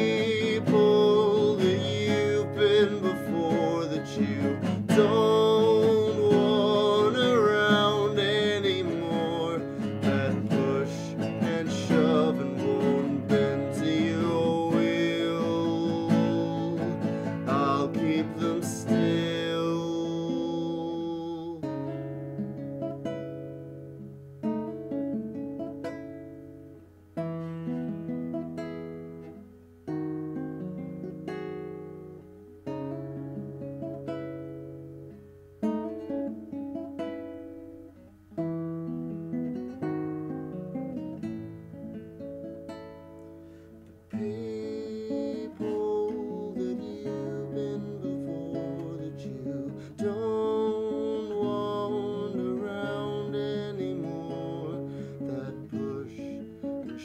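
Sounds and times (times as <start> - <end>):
man singing: 0.0 - 22.1, 43.8 - 57.0
classical guitar chords: 0.0 - 57.0.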